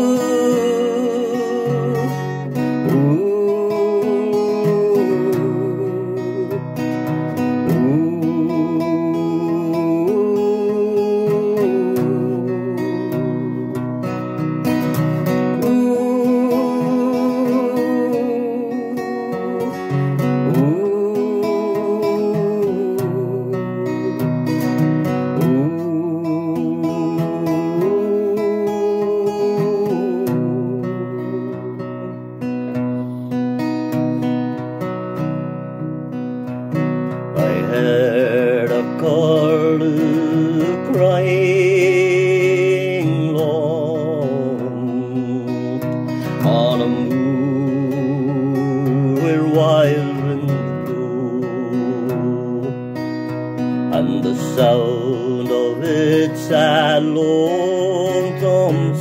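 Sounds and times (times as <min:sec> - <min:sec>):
man singing with vibrato: 0:00.0 - 0:34.3, 0:36.5 - 0:59.0
acoustic guitar strumming: 0:00.0 - 0:59.0.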